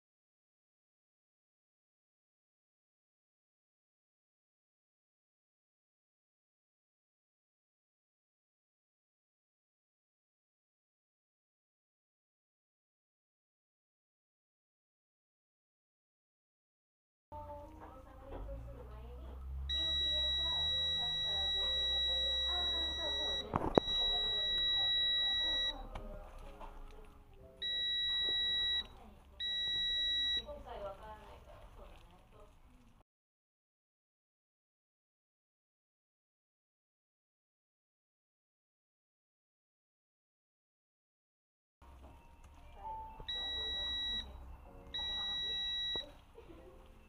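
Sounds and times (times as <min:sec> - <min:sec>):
multimeter continuity beeps: 0:19.6 - 0:26.0, 0:27.6 - 0:30.6, 0:43.0 - 0:46.2.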